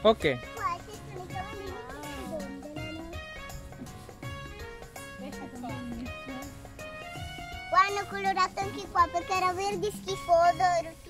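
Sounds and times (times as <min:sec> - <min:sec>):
background music: 0:00.0 - 0:11.0
young girl talking: 0:00.6 - 0:03.2, 0:07.7 - 0:11.0.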